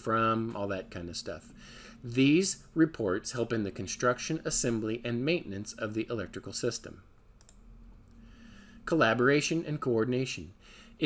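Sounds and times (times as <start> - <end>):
person speaking: 0.0 - 7.2, 8.8 - 11.0
low steady hum: 0.0 - 11.0
faint click: 7.4 - 8.2.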